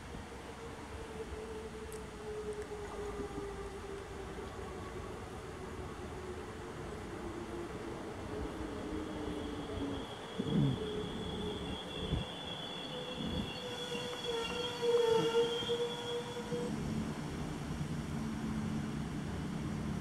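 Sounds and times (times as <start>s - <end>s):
railcar brakes squealing: 7.1s - 17.0s.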